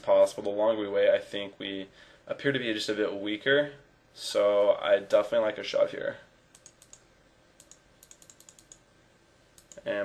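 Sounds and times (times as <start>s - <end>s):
computer mouse clicks: 6.5s - 8.8s, 9.6s - 9.9s.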